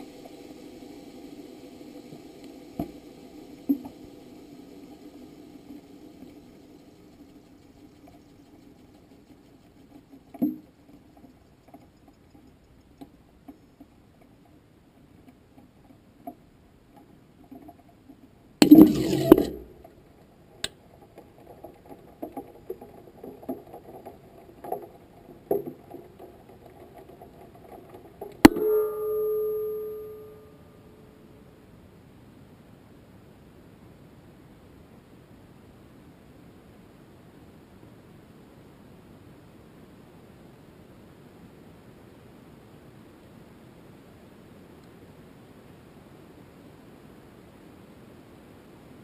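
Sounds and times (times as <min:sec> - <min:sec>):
faint clicks and knocks: 0:00.0 - 0:29.7
faint steady hum: 0:00.0 - 0:49.0
soft ticks: 0:07.7 - 0:18.2
ringing metallic zing: 0:28.5 - 0:30.9.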